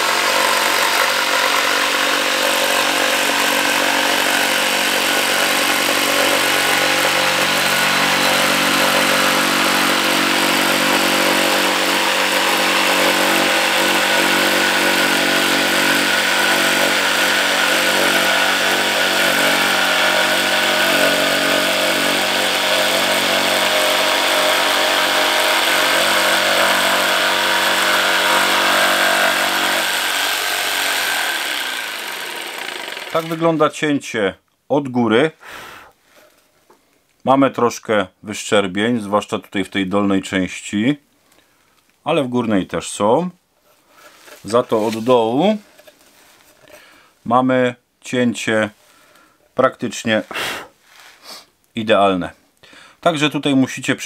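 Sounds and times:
electric jigsaw sawing board: 0.0s - 33.6s.

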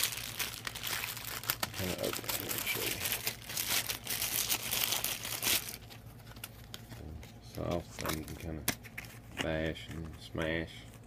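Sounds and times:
plastic wrapping crinkling: 0.0s - 9.1s.

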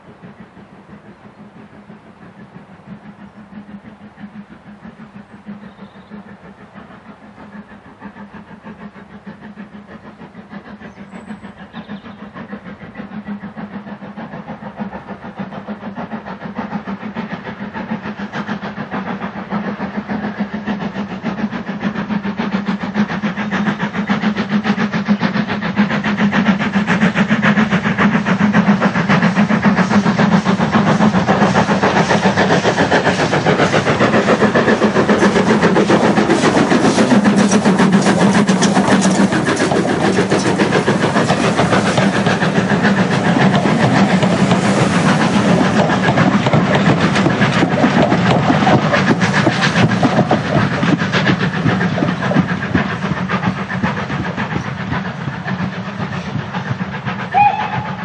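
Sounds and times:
steam locomotive exhaust beating: 0.0s - 58.0s.

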